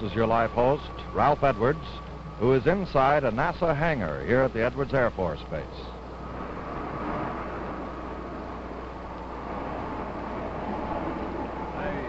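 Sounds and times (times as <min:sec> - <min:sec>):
constant low hum: 0:00.0 - 0:12.0
low rumble and hiss: 0:00.0 - 0:12.0.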